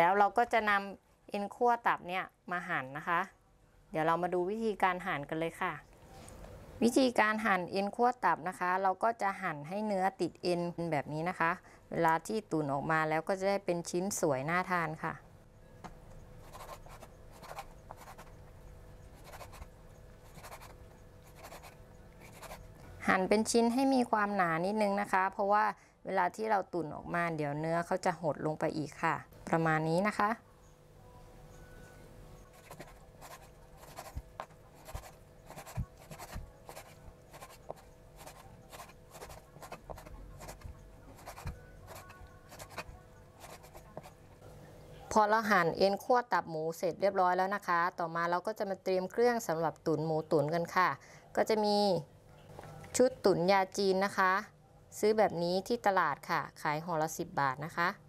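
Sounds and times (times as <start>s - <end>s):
knife cutting on wooden board: 32.6s - 44.1s.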